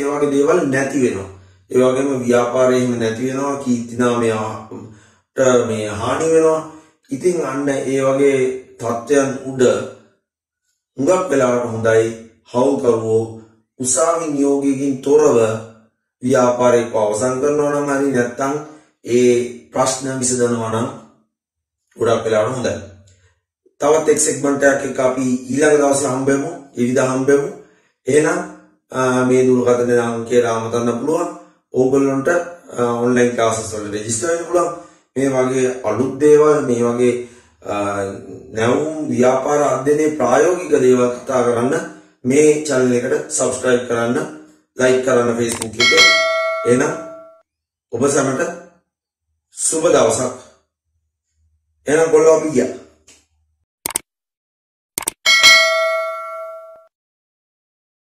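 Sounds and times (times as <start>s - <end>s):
man talking: 0.0s - 9.8s, 11.0s - 15.6s, 16.2s - 21.0s, 22.0s - 22.9s, 23.8s - 47.2s, 47.9s - 48.5s, 49.6s - 50.4s, 51.9s - 52.8s
quick clicks: 45.5s - 45.8s, 53.8s - 54.1s, 55.0s - 55.2s
bright bell ding: 45.8s - 47.4s, 55.3s - 56.9s.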